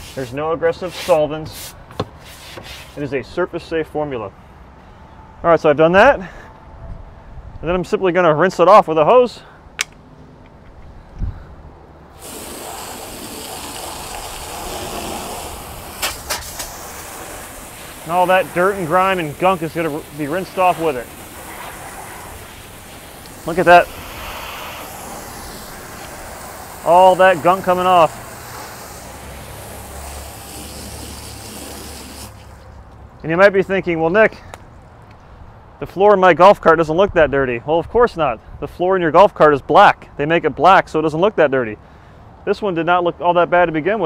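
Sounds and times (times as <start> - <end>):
hose water spraying on rubber floor: 0.0 - 3.0, 12.1 - 32.8
sharp clicks: 9.8 - 10.9.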